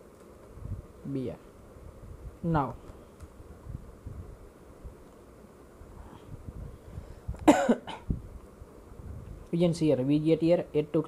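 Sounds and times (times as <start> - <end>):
person coughing: 7.4 - 8.1.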